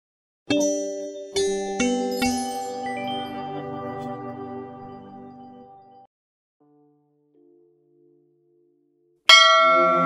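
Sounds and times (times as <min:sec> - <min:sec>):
bell ringing: 0:09.3 - 0:10.0.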